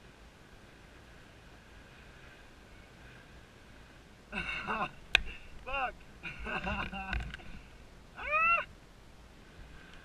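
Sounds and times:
man laughing: 0:04.3 - 0:05.0, 0:05.7 - 0:07.4
man's high-pitched vocal cry: 0:08.2 - 0:08.7.

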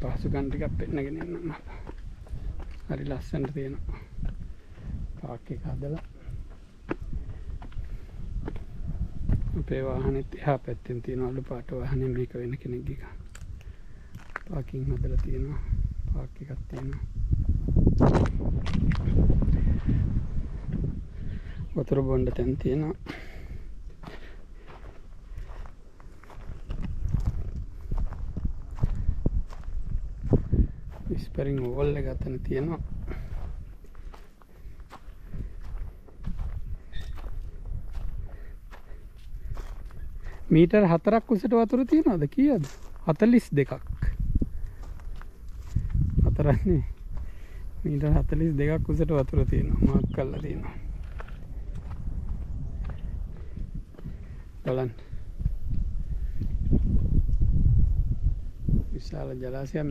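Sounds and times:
man's voice: 0:00.0 - 0:01.8, 0:09.5 - 0:13.2, 0:31.0 - 0:33.2, 0:40.5 - 0:44.2, 0:47.8 - 0:50.8, 0:54.6 - 0:55.1
wind rumble on microphone: 0:00.0 - 0:59.9.

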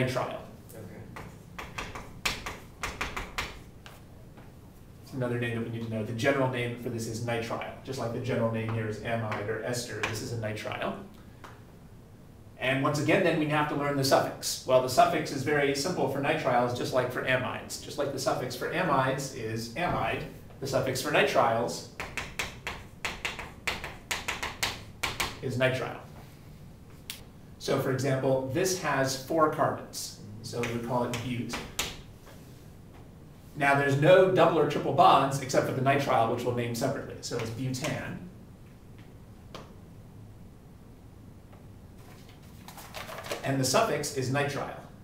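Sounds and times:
chalk tapping on chalkboard: 0:01.1 - 0:04.0, 0:22.0 - 0:25.4, 0:30.6 - 0:32.1.

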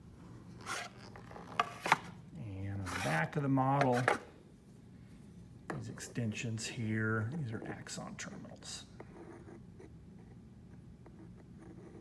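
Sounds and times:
low room hum: 0:00.0 - 0:12.0
metal probe scratching plastic: 0:02.7 - 0:04.2.

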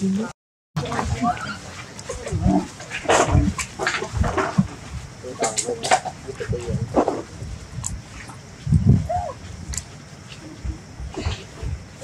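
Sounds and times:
macaques calling and grunting: 0:08.2 - 0:09.8.

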